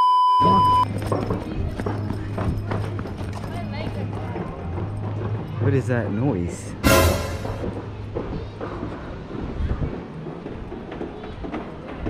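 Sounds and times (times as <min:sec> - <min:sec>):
test-tone beep: 0:00.0 - 0:00.9.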